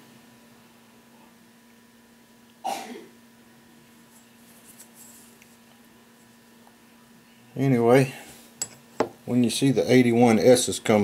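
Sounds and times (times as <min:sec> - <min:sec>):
faint steady hum: 0:00.0 - 0:11.0
person coughing: 0:02.6 - 0:03.2.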